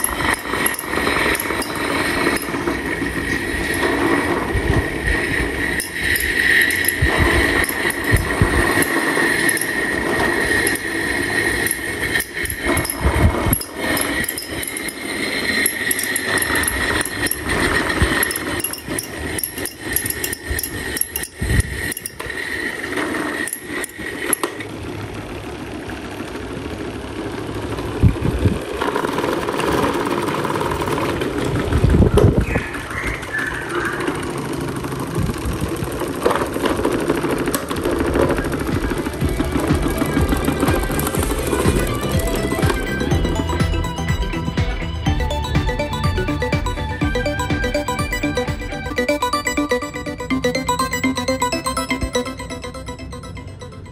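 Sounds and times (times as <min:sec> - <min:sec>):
high steady whine: 0:00.0 - 0:24.7, 0:37.2 - 0:53.9
desk fan motors humming: 0:00.0 - 0:47.2.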